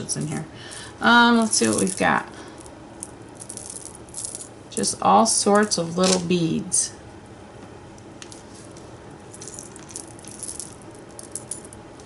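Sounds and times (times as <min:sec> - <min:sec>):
beads clicking and rattling: 0:01.4 - 0:04.5, 0:09.3 - 0:11.8.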